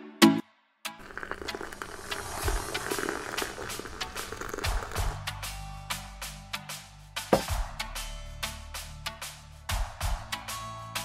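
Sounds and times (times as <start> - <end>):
hot water pouring into a gourd: 1.0 - 5.2
background music with deep bass: 1.0 - 11.0.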